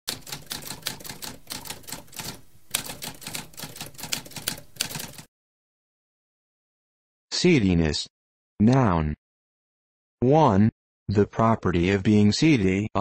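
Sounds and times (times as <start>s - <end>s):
typewriter keys clacking: 0.1s - 5.3s.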